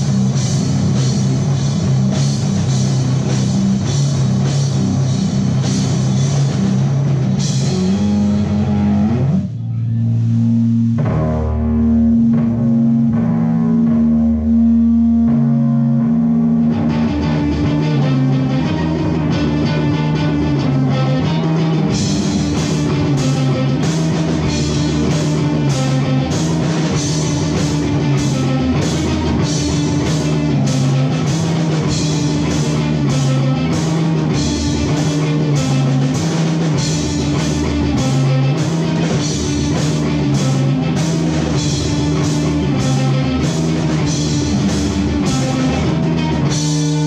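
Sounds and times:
rock band playing: 0.0 - 47.0.

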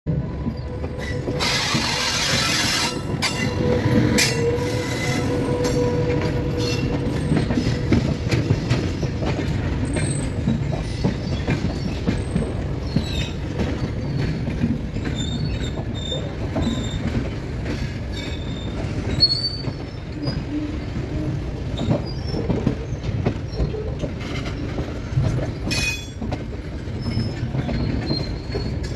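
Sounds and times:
passing locomotive rush: 0.1 - 28.9
train wheels rumbling on rails: 0.1 - 28.9
high wheel squeals: 0.4 - 7.8, 9.8 - 17.1, 18.1 - 23.8, 26.9 - 28.9.

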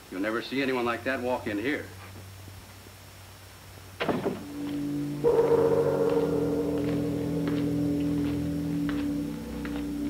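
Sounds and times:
faint footsteps: 4.4 - 10.0
dramatic organ music: 4.5 - 10.0.

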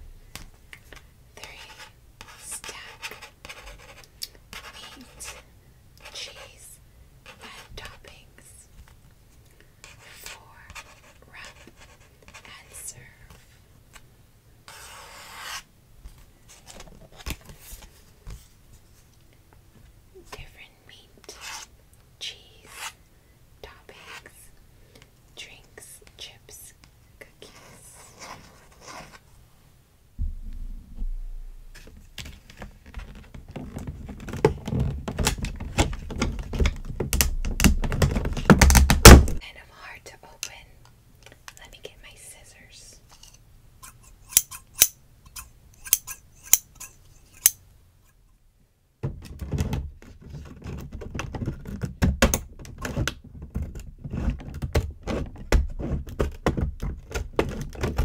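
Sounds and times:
soft whisper: 0.9 - 3.3, 4.5 - 8.8, 9.8 - 13.6, 20.1 - 23.0, 23.6 - 24.6, 25.3 - 29.0, 39.4 - 43.4
scissors clicking: 44.3 - 46.7.

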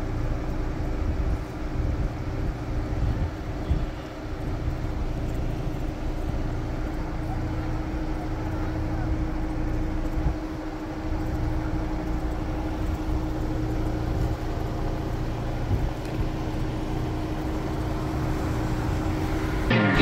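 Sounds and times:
car engine rumbling: 0.0 - 20.0
loud music: 19.7 - 20.0.

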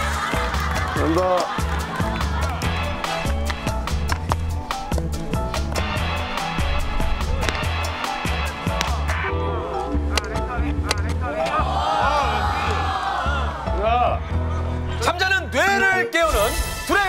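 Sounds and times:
music with quick beat and bass line: 0.0 - 11.2.

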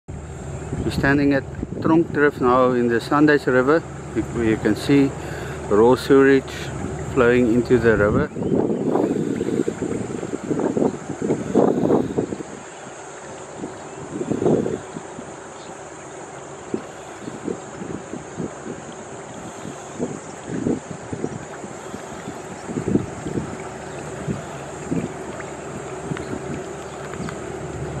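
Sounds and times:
sewage water flowing: 0.0 - 28.0
wind buffeting microphone: 0.1 - 28.0.

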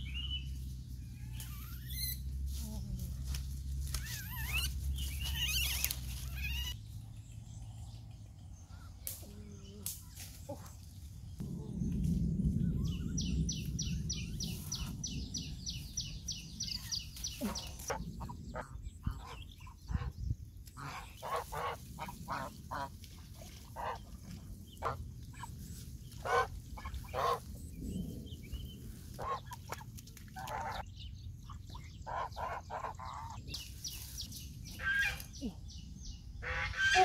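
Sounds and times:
footsteps rustling through undergrowth: 0.2 - 7.0, 9.8 - 11.4, 14.2 - 18.0, 20.6 - 27.7, 33.5 - 35.4
geese honking: 20.8 - 22.9, 26.2 - 27.4, 34.7 - 35.3, 36.4 - 37.0.

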